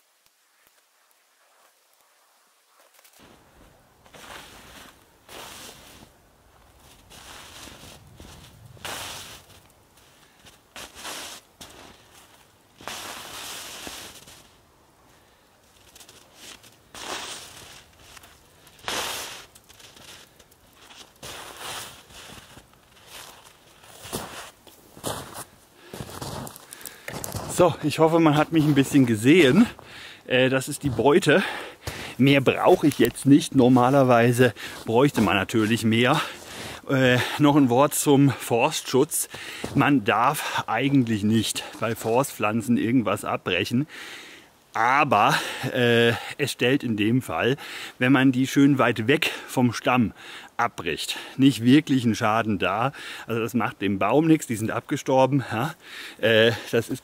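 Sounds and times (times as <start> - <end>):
dry twigs cracking and rustling: 0.2 - 5.4, 6.0 - 29.9, 30.8 - 37.3
footsteps crunching through snow: 1.3 - 14.7, 15.6 - 42.4.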